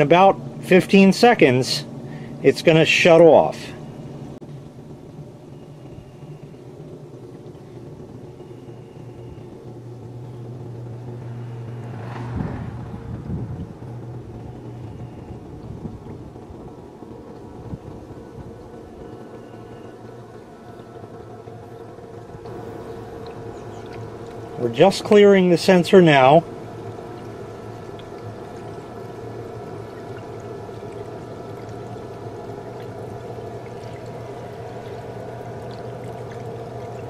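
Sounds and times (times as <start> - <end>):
pump rumble: 0.0 - 37.0
submersible pump humming: 0.0 - 37.0.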